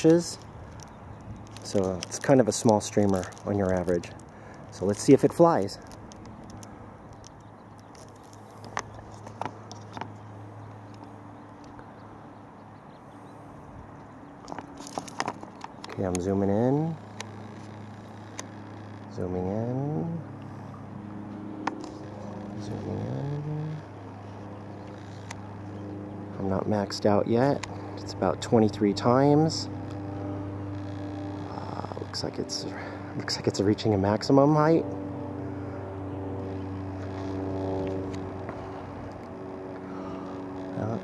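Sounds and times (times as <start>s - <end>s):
sharp clicks: 0.0s - 10.2s, 14.4s - 19.2s
droning motor hum: 0.0s - 41.0s.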